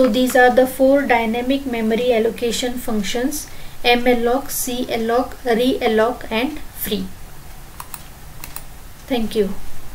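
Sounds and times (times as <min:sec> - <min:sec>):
low steady hum: 0:00.0 - 0:09.9
computer key clicks: 0:07.8 - 0:08.7.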